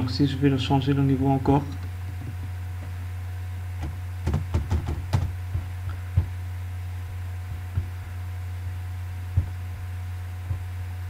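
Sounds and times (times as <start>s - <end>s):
low mains hum: 0.0s - 11.0s.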